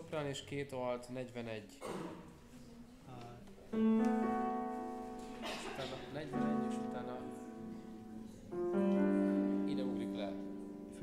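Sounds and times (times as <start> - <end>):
piano note ringing: 3.8 - 11.0.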